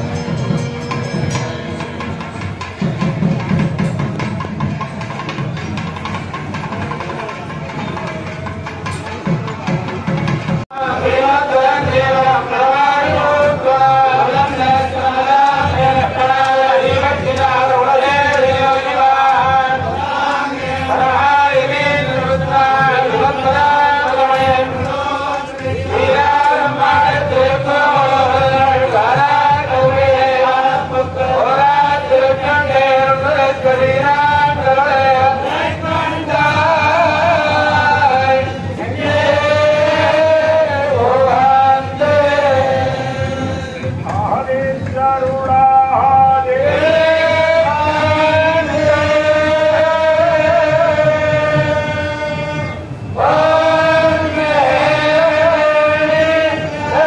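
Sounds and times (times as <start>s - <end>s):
priests chanting in unison: 10.6s - 57.0s.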